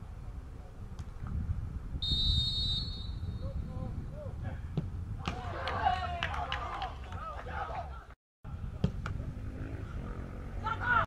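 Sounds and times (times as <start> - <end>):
wind rumble on microphone: 0.0 - 10.6
football kick thump: 4.7 - 5.5, 8.8 - 9.2
sharp claps: 5.6 - 7.3.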